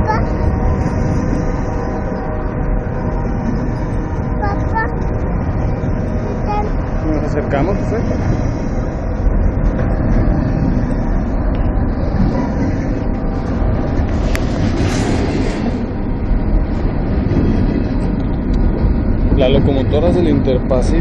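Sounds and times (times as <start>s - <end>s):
freight train wheels rumbling on rails: 0.0s - 21.0s.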